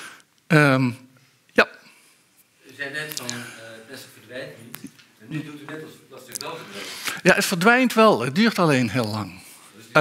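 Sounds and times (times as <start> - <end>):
person speaking: 0.5 - 10.0.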